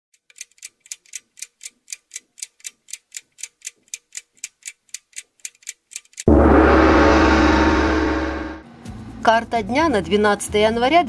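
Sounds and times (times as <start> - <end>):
clock ticking: 0.2 - 6.3.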